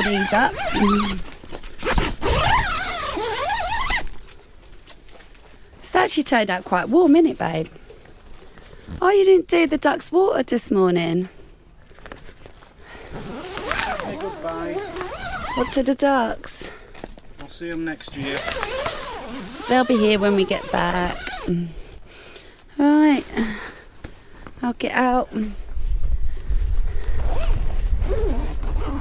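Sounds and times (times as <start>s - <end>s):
zip being pulled open: 0.0s - 4.2s, 13.0s - 16.0s, 18.2s - 21.7s, 27.0s - 29.0s.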